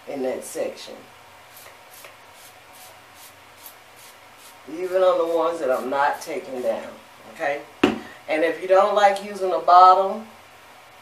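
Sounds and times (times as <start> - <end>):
mist sprayer spritzing hair: 1.5 - 6.9.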